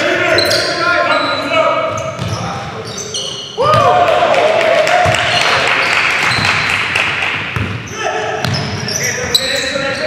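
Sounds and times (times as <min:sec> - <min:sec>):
voices echoing in a gym: 0:00.0 - 0:10.0
shoe squeaks: 0:00.2 - 0:03.6, 0:06.2 - 0:06.8, 0:07.8 - 0:10.0
basketball bouncing: 0:01.9 - 0:02.4, 0:06.2 - 0:09.4.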